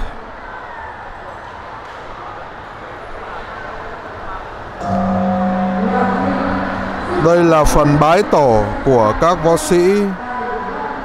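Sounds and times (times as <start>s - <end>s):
low droning tone: 4.8s - 8.3s.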